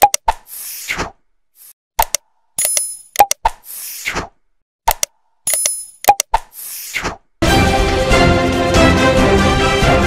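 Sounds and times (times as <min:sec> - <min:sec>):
mouse clicks: 0:02.0 - 0:03.7, 0:04.9 - 0:06.6.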